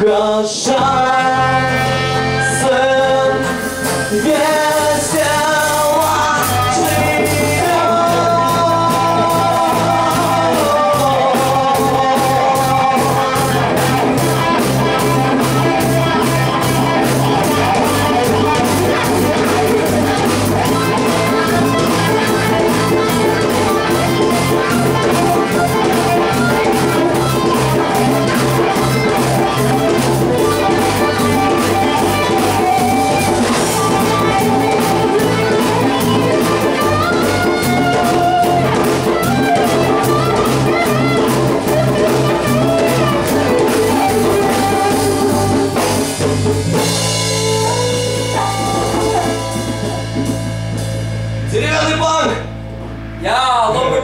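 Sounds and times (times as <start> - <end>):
guitars and bass playing: 0.0 - 54.0
drum kit beat: 1.2 - 54.0.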